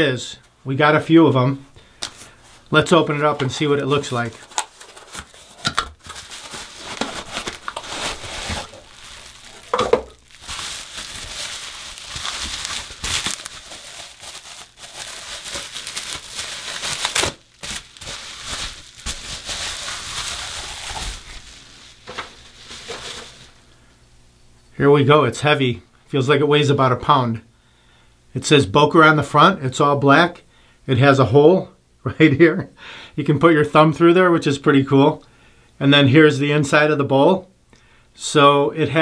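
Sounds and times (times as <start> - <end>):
plastic wrap crinkling: 2.0 - 23.7.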